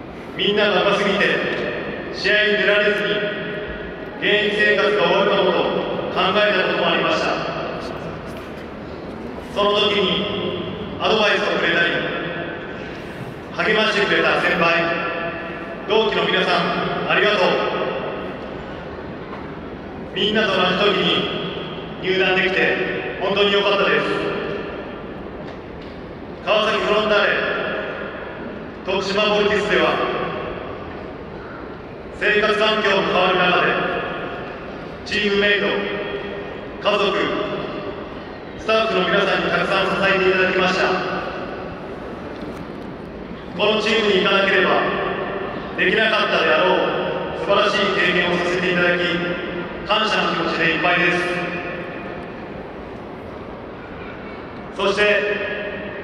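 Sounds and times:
public address voice echoing: 0.0 - 56.0
stadium background noise: 0.0 - 56.0.

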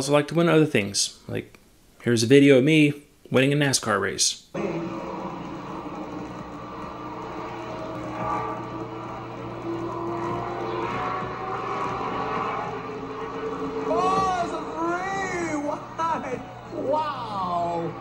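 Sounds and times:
race car engines running: 4.6 - 18.0
excited announcer speaking: 13.8 - 18.0.

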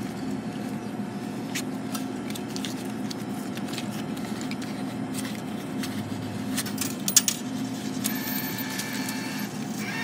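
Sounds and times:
high whirr of bill mechanism: 0.0 - 10.0.

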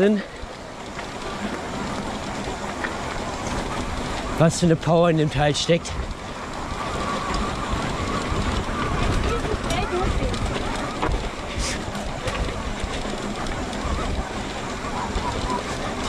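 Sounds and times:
bike clicks and knocks: 0.0 - 16.0
tyres rattling over stones: 0.0 - 16.0
wind rumble on microphone: 0.0 - 16.0.

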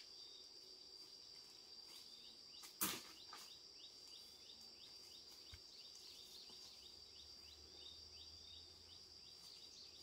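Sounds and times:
insect chirps: 0.0 - 10.0
insects droning: 0.0 - 10.0.

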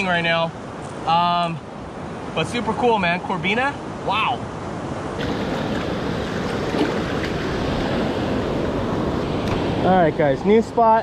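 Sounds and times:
ocean surf washing over shallows: 0.0 - 11.0
small water splashes: 5.2 - 8.5.

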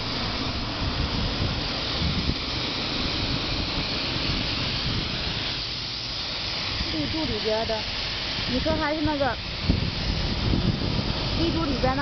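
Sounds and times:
paint spray gun hissing: 0.0 - 12.0.

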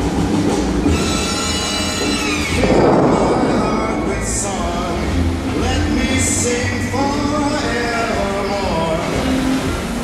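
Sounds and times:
fountain water jets rushing: 0.0 - 10.0
sustained music tones: 0.9 - 7.6.

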